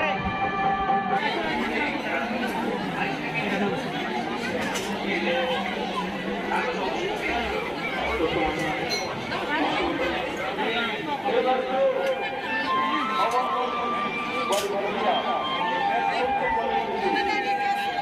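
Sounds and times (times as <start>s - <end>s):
crowd chatter: 0.0s - 18.0s.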